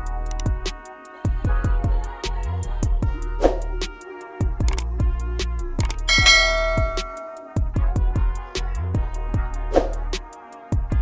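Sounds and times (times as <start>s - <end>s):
music with steady beat: 0.0s - 11.0s
notification bell chime: 6.1s - 7.5s.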